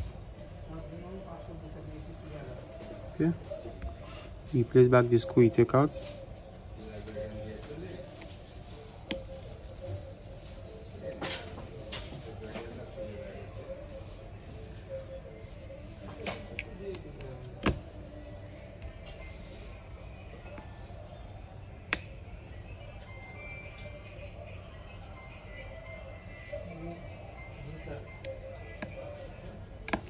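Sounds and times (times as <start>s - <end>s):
faint background music: 0.0s - 30.0s.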